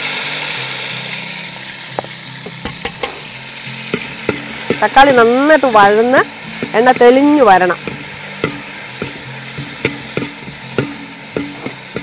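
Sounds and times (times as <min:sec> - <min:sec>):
tomatoes sizzling in hot oil: 0:00.0 - 0:12.0.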